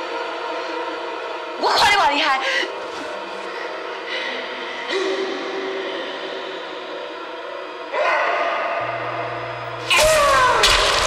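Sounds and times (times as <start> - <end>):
eerie echoing drone: 0.0 - 11.0
low hum: 8.8 - 11.0.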